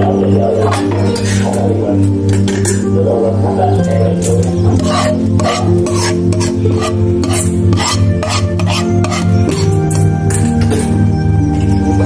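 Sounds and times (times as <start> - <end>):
music with pulsing bass: 0.0 - 12.0
utensil scraping metal pan: 4.4 - 10.1.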